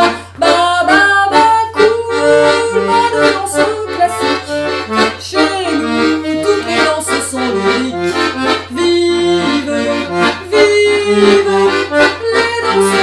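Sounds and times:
accordion dance tune: 0.0s - 13.0s.

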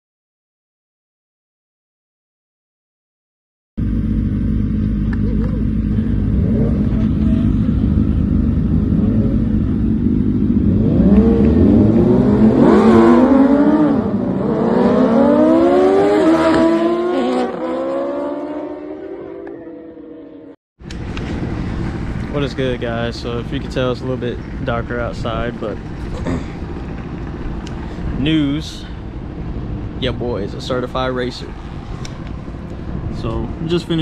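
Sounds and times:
motorcycle engines revving: 3.8s - 34.0s.

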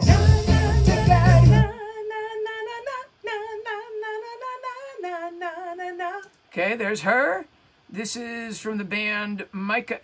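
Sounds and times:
song with heavy bass: 0.0s - 1.7s.

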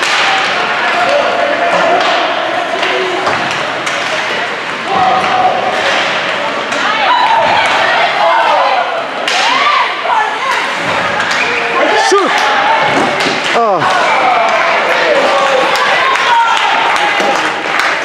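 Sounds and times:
hockey sticks and puck knocking boards: 0.0s - 6.9s, 12.3s - 14.0s
spectators shouting: 0.0s - 18.0s.

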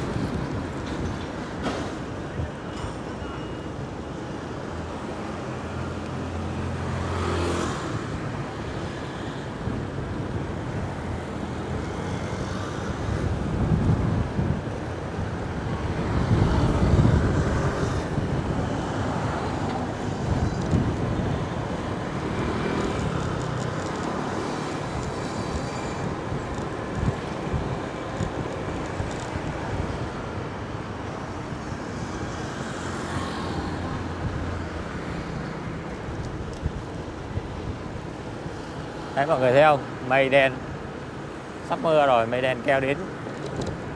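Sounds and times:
street traffic from moving vehicle: 0.0s - 43.9s.

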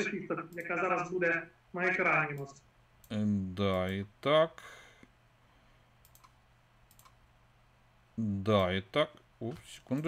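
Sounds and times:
faint clicks: 6.0s - 7.2s.

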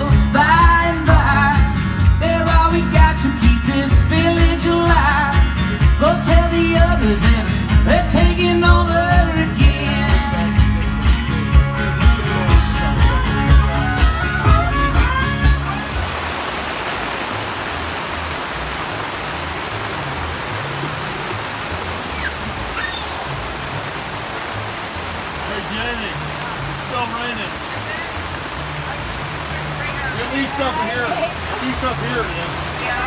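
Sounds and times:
string band music: 0.0s - 16.3s
heavy rain pouring: 0.0s - 33.0s.

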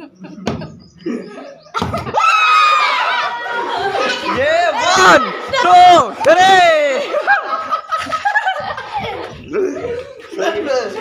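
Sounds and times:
men and boys laughing: 0.0s - 11.0s.

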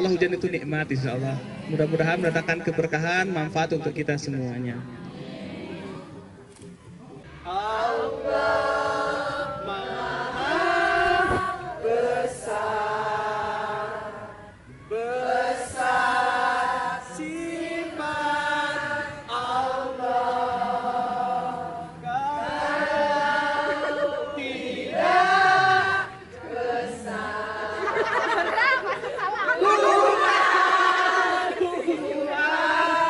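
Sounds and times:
women chanting in unison: 7.5s - 28.6s, 29.4s - 33.0s.

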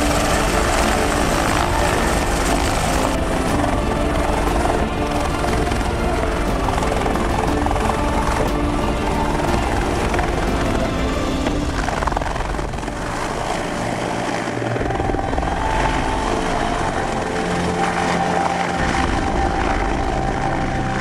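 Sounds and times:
background music: 0.0s - 21.0s
helicopter rotor and turbine: 0.0s - 21.0s.

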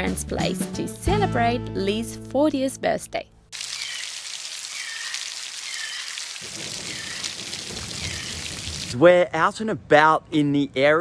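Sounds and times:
heavy rain on foliage and deck: 3.6s - 9.0s
deep rumble of rain: 6.1s - 9.2s.

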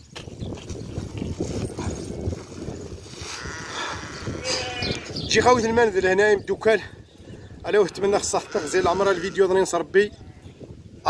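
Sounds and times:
plastic sack rustling and crackling: 0.0s - 4.4s
sheep bleating: 3.4s - 5.2s, 7.9s - 9.6s.

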